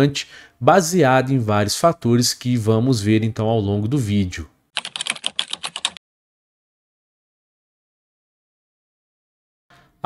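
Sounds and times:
keyboard typing clicks: 4.8 - 6.0.

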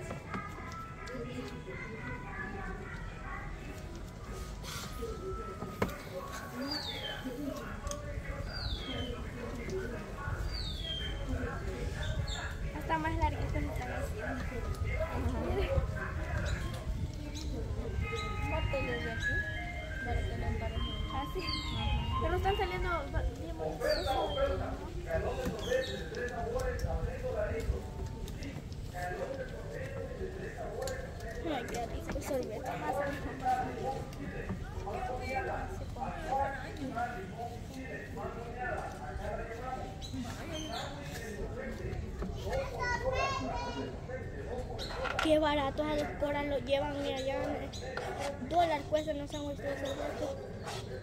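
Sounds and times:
people and children talking: 0.0 - 51.0
voices: 0.0 - 51.0
ice cream van jingle: 17.7 - 23.1
high child's voice: 42.5 - 43.8.

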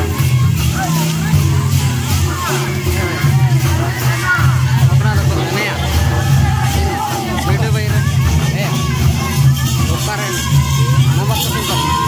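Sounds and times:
crowd talking and calling out: 0.0 - 12.0
low drum beats: 0.0 - 12.0.

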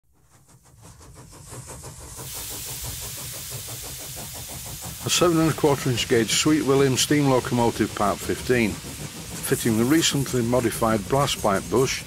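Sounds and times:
steam engine chuffing: 0.1 - 12.0.

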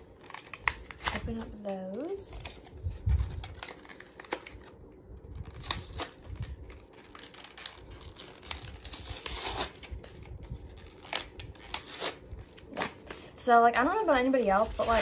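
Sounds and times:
plastic packaging crinkling: 0.0 - 15.0.

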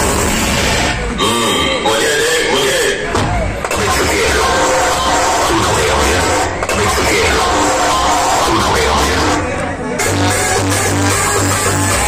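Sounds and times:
bass-heavy dj music over speakers: 0.0 - 12.0
crowd noise: 0.0 - 12.0.

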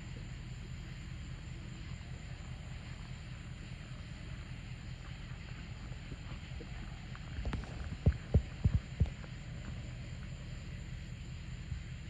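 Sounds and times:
wind rumble on microphone: 1.9 - 10.8
horse hooves thudding on sand: 4.0 - 10.0.

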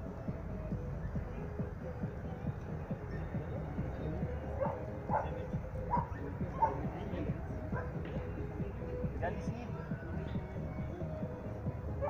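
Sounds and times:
background music: 0.0 - 12.0
dog barking: 4.6 - 6.9, 7.7 - 8.0.

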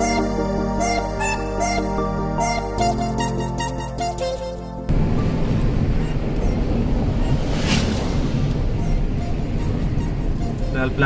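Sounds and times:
road and wind noise in car: 4.9 - 11.0.

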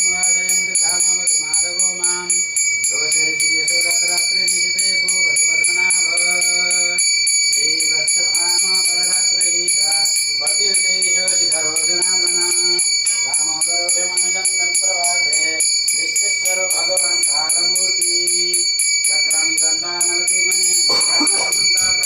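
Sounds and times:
person chanting: 0.0 - 2.3, 2.9 - 7.0, 7.6 - 22.0
hand bell ringing: 14.7 - 22.0.

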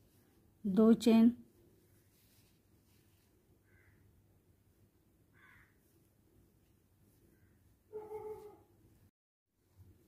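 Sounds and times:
faint short bird call: 3.7 - 4.0.

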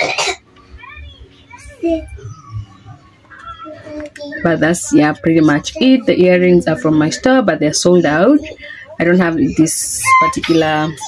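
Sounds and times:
woman coughing: 0.0 - 0.4
child chattering: 0.8 - 4.4.

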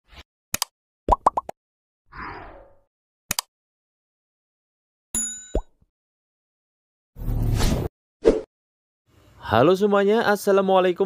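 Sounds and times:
bright ding: 5.2 - 5.7.

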